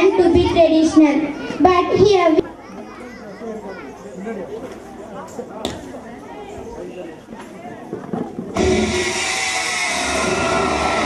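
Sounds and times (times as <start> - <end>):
girl speaking over microphone: 0.0 - 3.2
children chattering: 0.0 - 11.0.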